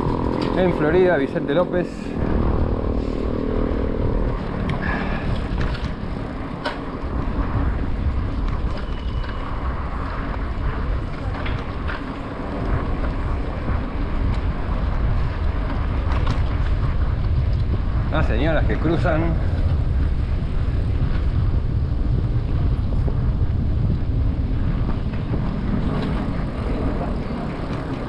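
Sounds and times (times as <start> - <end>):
low hum: 0.0 - 28.0
tyre and road noise: 0.0 - 28.0
wind buffeting microphone: 0.0 - 28.0.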